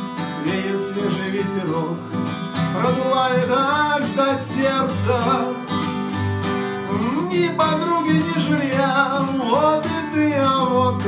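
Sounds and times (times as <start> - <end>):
acoustic guitar: 0.0 - 11.0
person singing: 0.1 - 5.8, 6.8 - 11.0.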